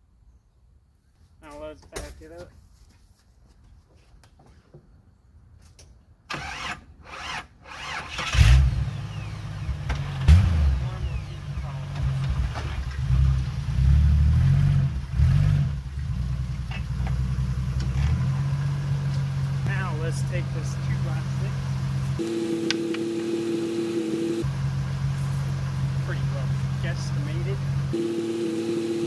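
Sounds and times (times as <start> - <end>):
starter cranking engine: 6.3 - 8.6
car engine revving and running: 7.8 - 29.0.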